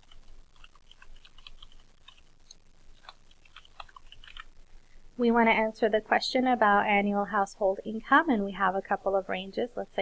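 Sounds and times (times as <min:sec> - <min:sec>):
typing on computer keyboard: 0:00.0 - 0:04.5.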